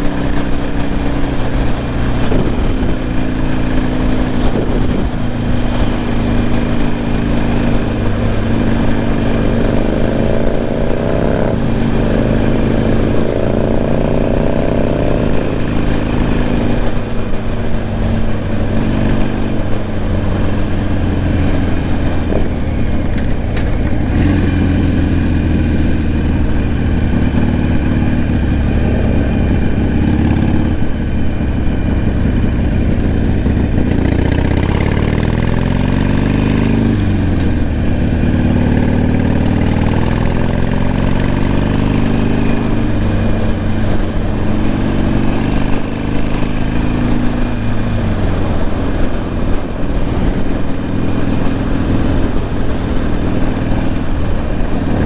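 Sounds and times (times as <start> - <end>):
motorcycle engine accelerating: 0.0 - 55.0
wind rushing past microphone: 0.0 - 55.0.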